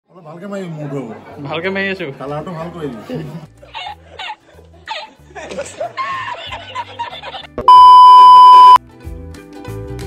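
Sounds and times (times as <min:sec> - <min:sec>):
background music: 0:00.2 - 0:07.7, 0:08.8 - 0:10.0
man laughing: 0:03.8 - 0:07.6
loud electronic beep: 0:07.7 - 0:08.8.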